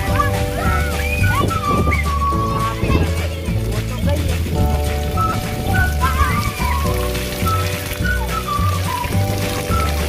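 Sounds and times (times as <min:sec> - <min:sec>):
background music: 0:00.0 - 0:10.0
fountain water pattering: 0:00.0 - 0:10.0.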